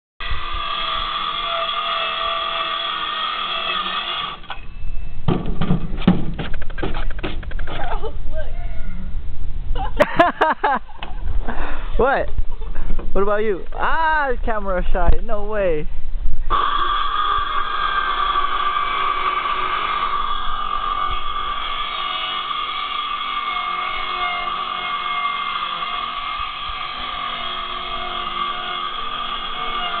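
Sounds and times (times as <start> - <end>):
circular saw cutting plywood: 0.2 - 4.5, 16.5 - 30.0
handling knocks and thumps: 5.3 - 7.8.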